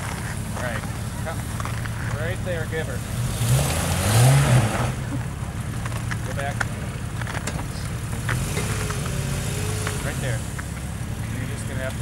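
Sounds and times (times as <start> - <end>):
car engine at low revs: 0.0 - 12.0.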